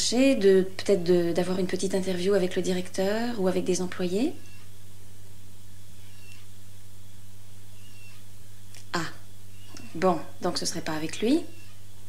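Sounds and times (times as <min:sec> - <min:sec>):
low electrical hum: 0:00.0 - 0:12.0
tape hiss: 0:00.0 - 0:12.0
faint high squeak: 0:06.0 - 0:06.6, 0:07.8 - 0:08.3, 0:11.5 - 0:11.8.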